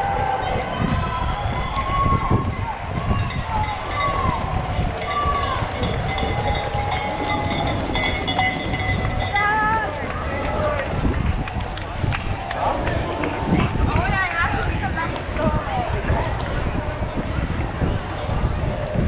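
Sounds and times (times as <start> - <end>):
spectators shouting: 0.0 - 19.0.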